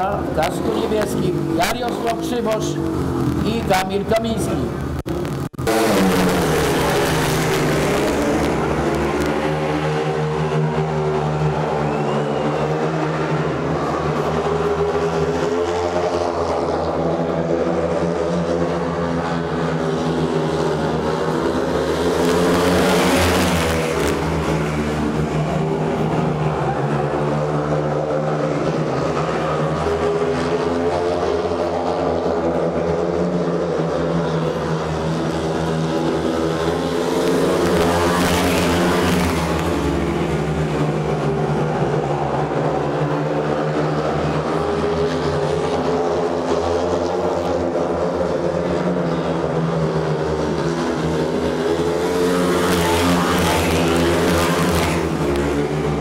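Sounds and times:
motorcycles racing: 0.0 - 56.0.

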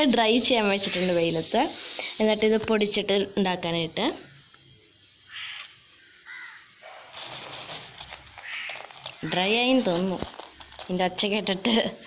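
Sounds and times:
crow cawing: 5.3 - 6.7, 8.4 - 9.4
soft rustling: 7.1 - 11.6.

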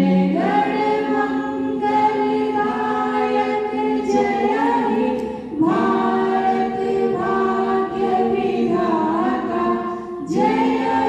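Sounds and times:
group singing without instruments: 0.0 - 11.0.

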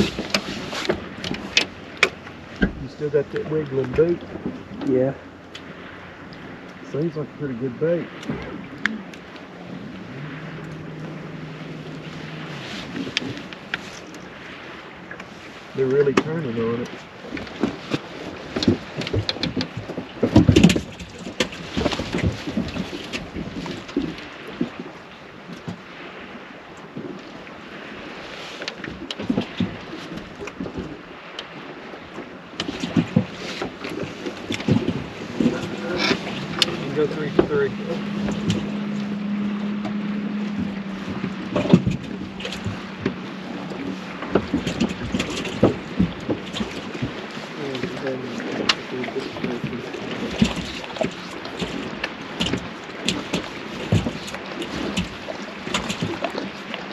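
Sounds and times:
gear knocking against boat hull: 0.0 - 4.9, 16.0 - 24.9, 32.1 - 48.8, 49.4 - 56.9
steady low hum: 5.2 - 15.0, 34.0 - 46.3.

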